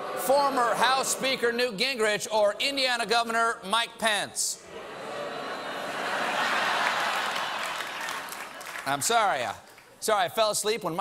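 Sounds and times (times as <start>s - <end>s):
audience applauding: 5.8s - 10.0s.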